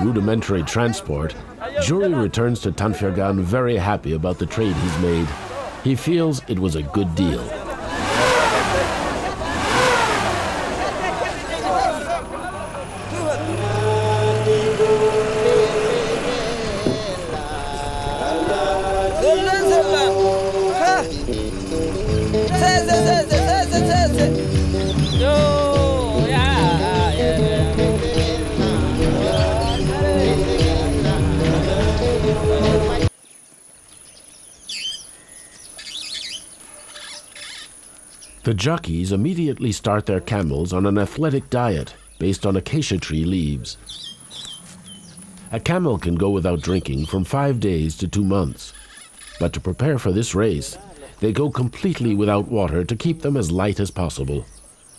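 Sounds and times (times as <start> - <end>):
men talking: 0.0 - 33.1, 38.4 - 43.8, 45.5 - 54.5
birds chirping: 0.0 - 54.9
truck engine running: 4.3 - 33.1
music: 13.2 - 33.1.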